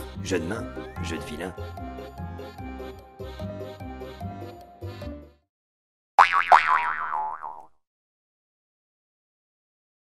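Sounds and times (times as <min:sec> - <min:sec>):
background music: 0:00.0 - 0:05.5
cartoon boing sound effect: 0:06.2 - 0:07.7.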